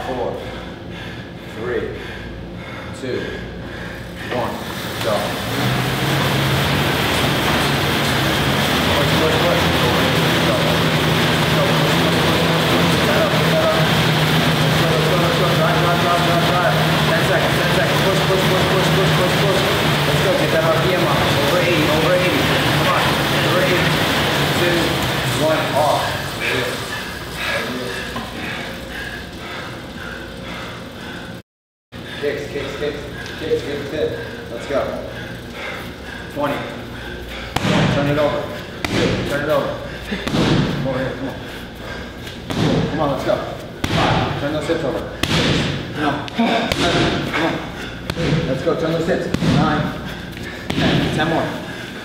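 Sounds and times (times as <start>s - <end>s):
exercise bike fan whirring: 0.0s - 52.0s.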